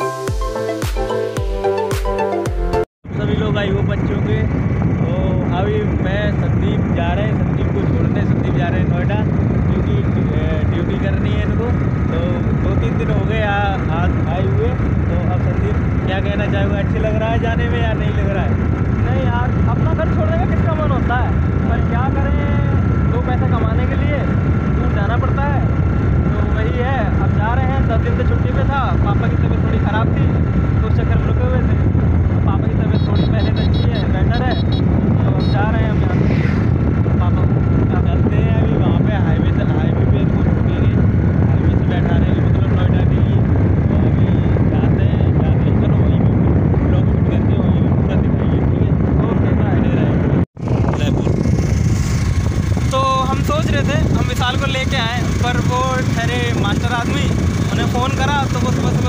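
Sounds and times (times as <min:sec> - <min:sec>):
road noise: 0:03.0 - 0:59.0
wind buffeting microphone: 0:03.0 - 0:59.0
motorcycle running: 0:03.1 - 0:59.0.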